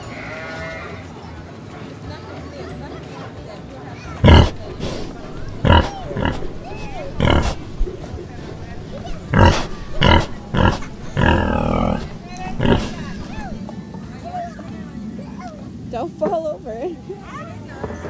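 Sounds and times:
pig oinks and grunts: 4.2s - 13.6s.

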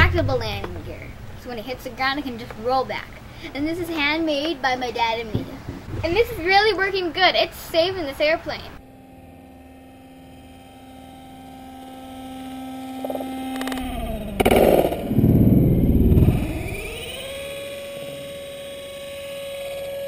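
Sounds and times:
loud rough rushing noise: 0.0s - 1.4s
small electric motor hum: 8.8s - 20.0s.

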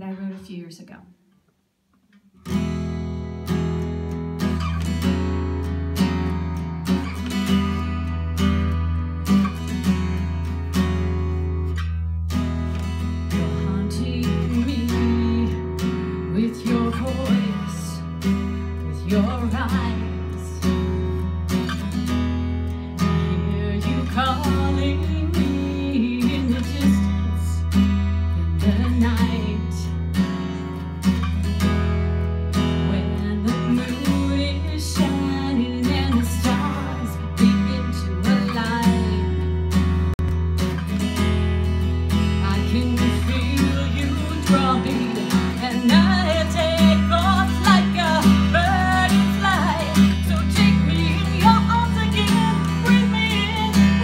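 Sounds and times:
acoustic guitar strummed: 2.3s - 54.0s.

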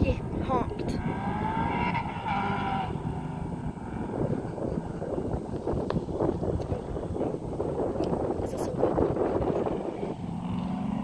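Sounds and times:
race cars accelerating hard: 0.3s - 5.6s.

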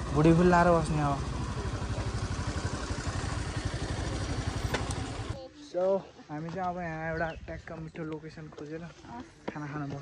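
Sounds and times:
motorcycle engine running: 0.0s - 5.4s.

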